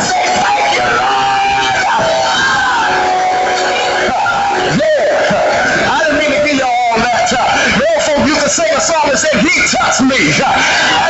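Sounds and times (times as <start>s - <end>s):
man preaching in sung tones: 4.2s - 11.0s.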